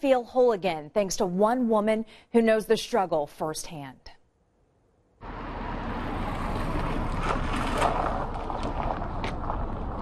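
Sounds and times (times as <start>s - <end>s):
car rolling past: 5.2s - 10.0s.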